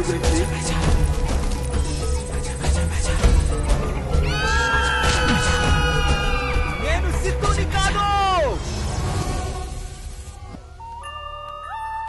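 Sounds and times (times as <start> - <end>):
dark trailer score: 0.0 - 12.0.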